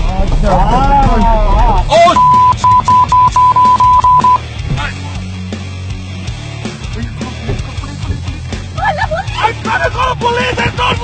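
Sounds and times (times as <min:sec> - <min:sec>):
background music: 0:00.0 - 0:11.0
censor bleep: 0:02.0 - 0:04.4.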